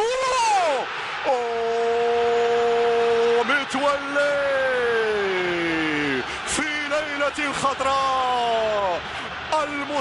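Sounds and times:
commentator shouting: 0.0 - 9.0
stadium crowd cheering: 0.0 - 10.0.

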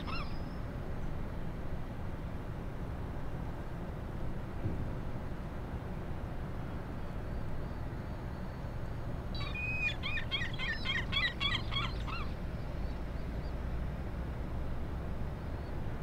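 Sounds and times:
low rumble of ferry: 0.0 - 16.0.

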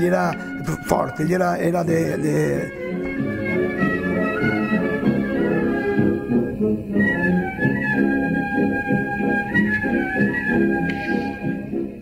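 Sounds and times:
wind band playing: 2.7 - 11.3.

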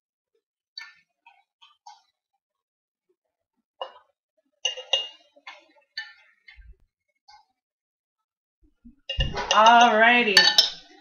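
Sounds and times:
spoon clinking on glass jars: 4.6 - 5.2, 9.1 - 11.0.

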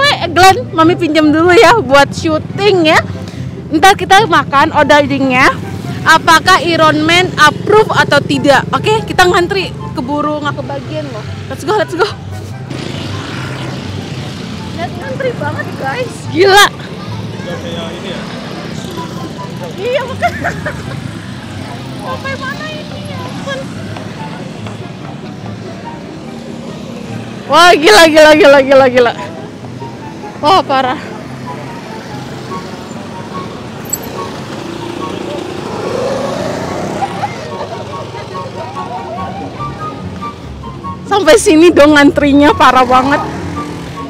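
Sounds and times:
motor scooter engines: 0.0 - 44.0
street traffic: 0.0 - 44.0
crowd chatter: 36.7 - 40.8.

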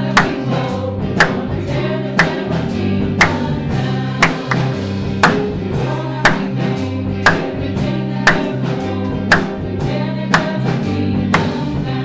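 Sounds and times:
drum hits: 0.0 - 11.9
group of singers: 0.0 - 12.0
worship band playing gospel music: 0.0 - 12.0.

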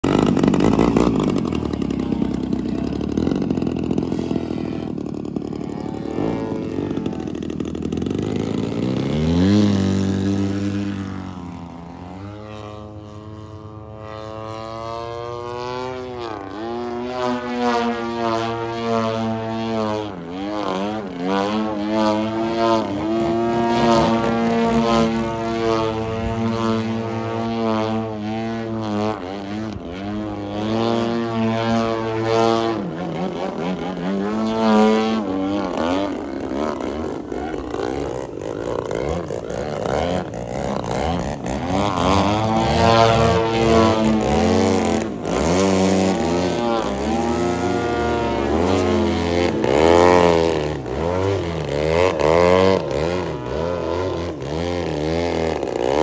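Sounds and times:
model plane engine: 0.0 - 56.0.

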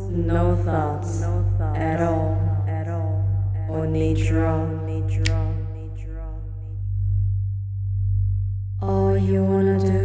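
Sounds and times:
pulsing sine tone hum: 0.0 - 10.0.

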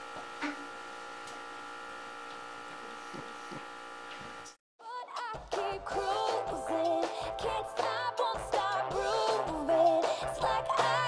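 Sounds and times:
electrical hum with high whine: 0.0 - 4.6.

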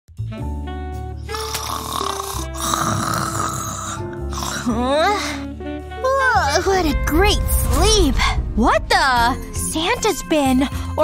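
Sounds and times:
background music: 0.1 - 11.0
person snoring: 1.2 - 5.0.

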